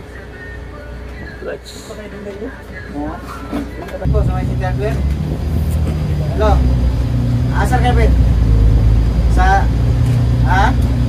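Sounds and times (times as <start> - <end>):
bus engine drone: 3.4 - 11.0.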